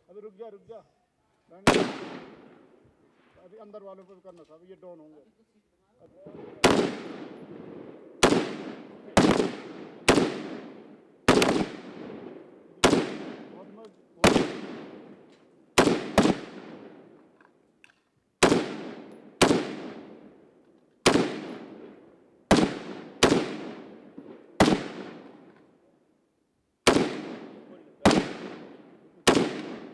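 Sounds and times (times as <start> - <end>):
rifle shots echoing: 1.6 - 2.7, 6.4 - 17.2, 18.4 - 25.6, 26.8 - 29.9.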